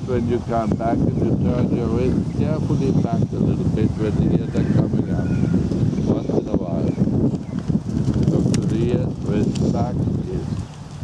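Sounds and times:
person's voice: 0.0s - 5.4s, 8.3s - 10.6s
wind buffeting microphone: 0.0s - 11.0s.

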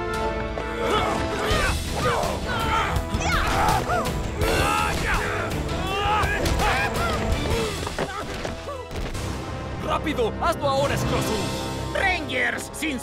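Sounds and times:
loud action music: 0.0s - 13.0s
fighters grunting and shouting: 0.7s - 8.9s.

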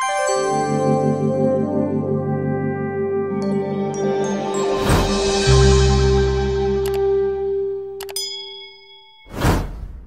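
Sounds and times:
music: 0.0s - 9.6s
loud whoosh: 4.7s - 5.5s, 9.3s - 10.0s
mouse clicks: 8.0s - 8.2s.

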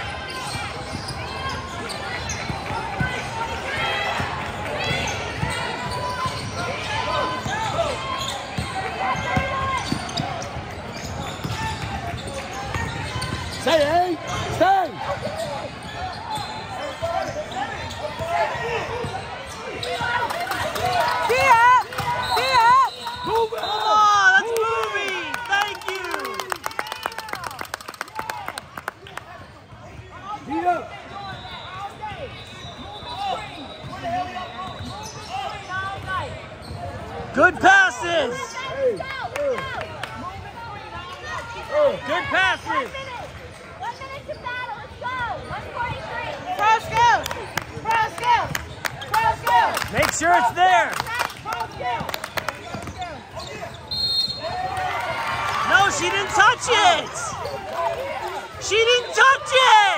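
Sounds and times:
sneakers squeaking on hardwood: 4.8s - 23.4s, 31.2s - 37.0s, 51.7s - 54.7s
spectators voices and shouts: 37.3s - 59.9s.

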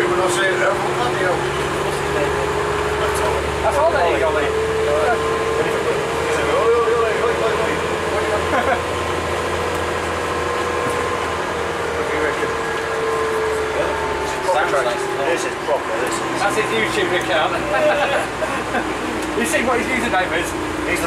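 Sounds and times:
bus drivetrain whine: 0.0s - 21.0s
low engine rumble: 0.0s - 21.0s
passengers talking: 0.0s - 21.0s.

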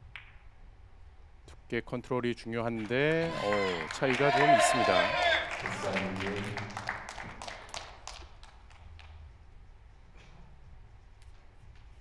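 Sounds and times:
low hall hum: 0.0s - 12.0s
applause: 2.7s - 9.2s.

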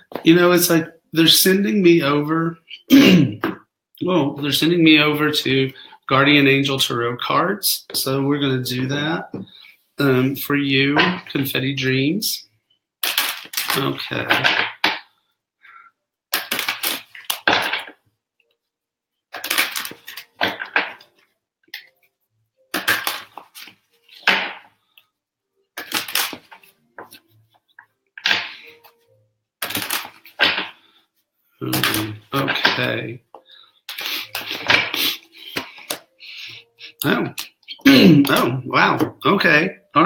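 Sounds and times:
cards being shuffled: 13.0s - 15.0s, 16.4s - 18.0s, 19.4s - 21.1s, 22.7s - 24.7s, 25.8s - 27.2s, 29.6s - 30.8s, 31.6s - 32.9s, 33.9s - 36.1s.

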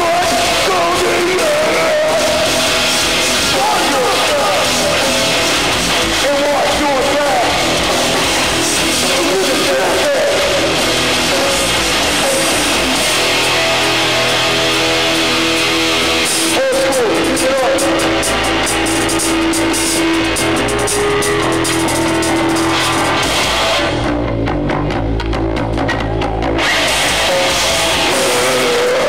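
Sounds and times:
distorted electric guitars: 0.0s - 29.0s
drums: 0.0s - 29.0s.

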